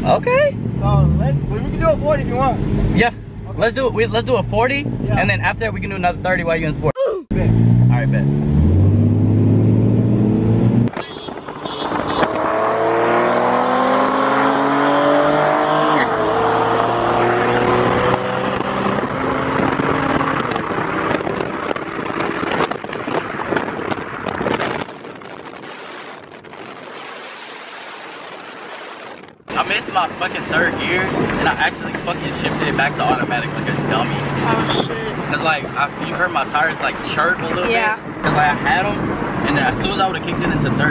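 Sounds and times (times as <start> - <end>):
car engines accelerating hard: 0.0 - 40.9
wind noise: 10.3 - 40.9.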